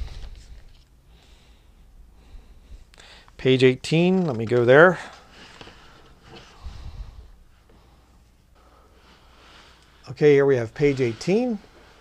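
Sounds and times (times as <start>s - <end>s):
book pages rustling: 0.0s - 0.9s, 4.1s - 6.5s.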